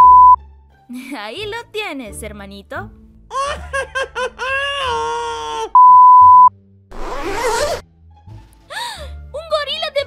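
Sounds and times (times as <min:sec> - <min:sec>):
test tone beep: 0:00.0 - 0:00.4, 0:05.8 - 0:06.5.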